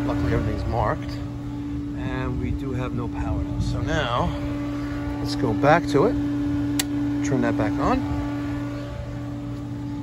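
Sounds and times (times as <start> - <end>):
pool equipment humming: 0.0 - 10.0.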